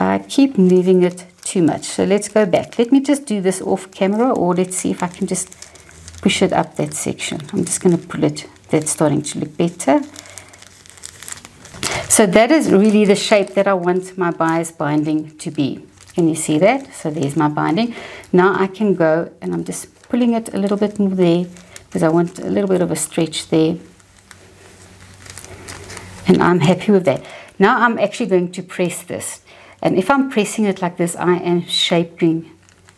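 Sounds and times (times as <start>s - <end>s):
paper rustling and crinkling: 0.0s - 29.1s, 32.2s - 32.9s
faint crackles: 0.0s - 32.9s
low steady hum: 0.0s - 32.9s.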